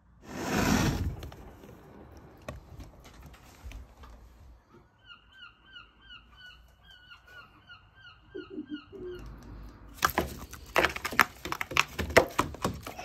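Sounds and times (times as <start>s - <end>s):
gull calling: 5.0s - 9.3s.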